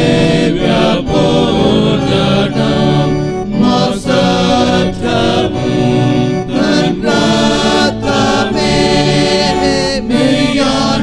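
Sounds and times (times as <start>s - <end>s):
male choir singing: 0.0s - 11.0s.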